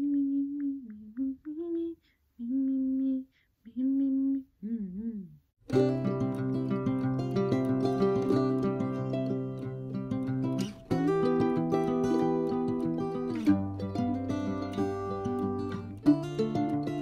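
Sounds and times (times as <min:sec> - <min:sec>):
woman humming: 0:00.0 - 0:05.5
plucked acoustic string music: 0:05.7 - 0:17.0.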